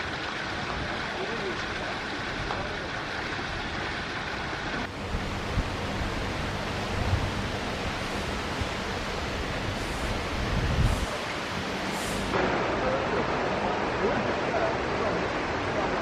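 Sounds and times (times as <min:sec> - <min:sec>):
water splashing down rock waterfall: 0:00.0 - 0:16.0
wind rumbling on microphone: 0:04.8 - 0:12.4.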